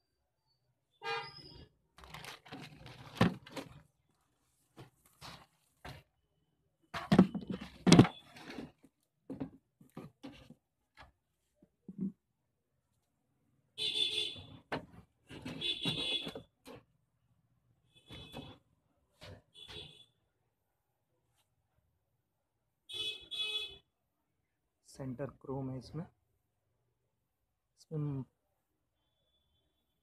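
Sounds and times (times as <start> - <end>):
plastic scraping and rustling: 1.9 - 6.1, 6.9 - 12.2, 14.6 - 16.9.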